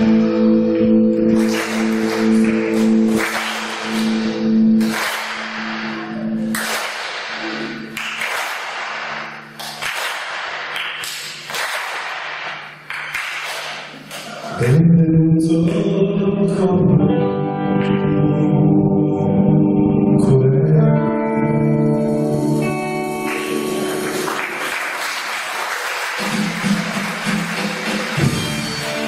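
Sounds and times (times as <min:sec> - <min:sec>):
live band playing chords: 0:00.0 - 0:09.6, 0:21.0 - 0:29.0.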